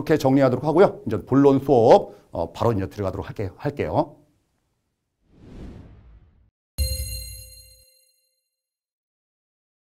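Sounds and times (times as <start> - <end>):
bell-like chime ringing: 6.8 - 8.6.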